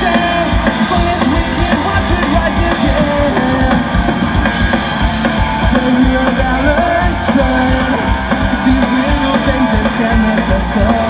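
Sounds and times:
pop-punk band playing live: 0.0 - 11.0.

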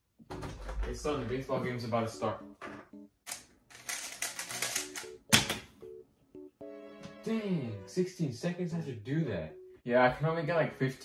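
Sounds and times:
light background music: 0.9 - 11.0
rapid clicking of speedcube: 3.3 - 5.0.

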